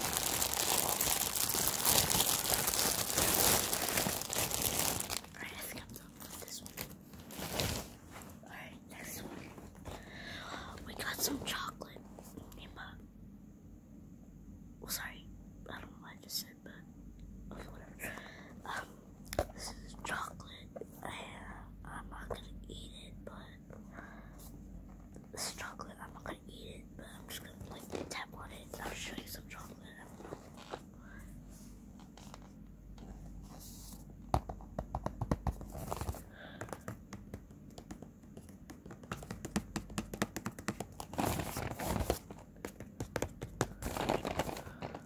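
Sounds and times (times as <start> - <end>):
person whispering: 5.2 - 7.0, 8.3 - 13.0, 14.8 - 16.9, 17.5 - 23.9, 25.2 - 30.6
cardboard box clicks and taps: 34.3 - 35.7, 36.6 - 41.0.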